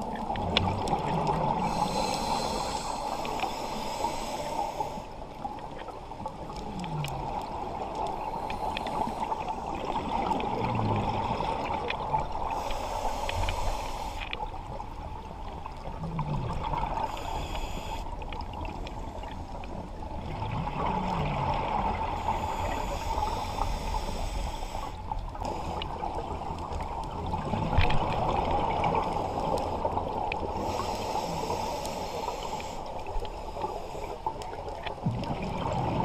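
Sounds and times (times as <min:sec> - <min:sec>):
hissing regulator inhalations: 0:01.6 - 0:05.2, 0:08.1 - 0:09.8, 0:12.5 - 0:14.4, 0:17.0 - 0:18.0, 0:22.2 - 0:26.0, 0:30.5 - 0:34.3.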